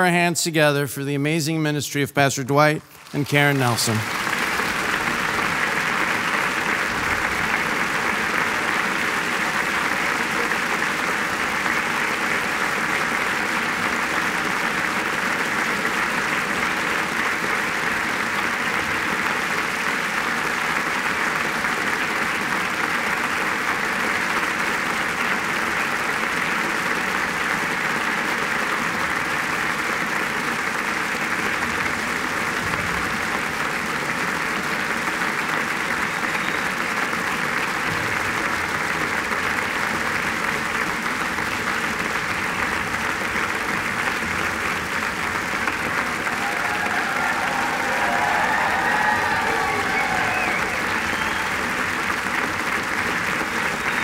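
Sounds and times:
congregation applauding: 2.3s - 54.0s.

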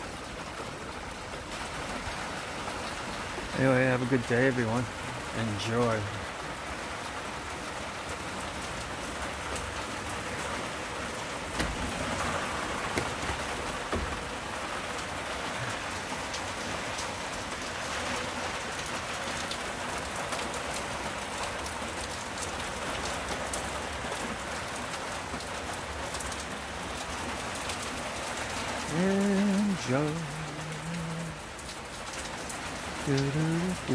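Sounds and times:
steady rain patter: 0.0s - 33.9s.

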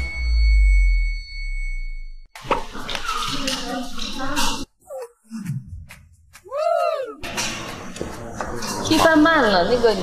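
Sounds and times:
high ringing tone: 0.0s - 2.3s
busy voices: 6.4s - 10.0s.

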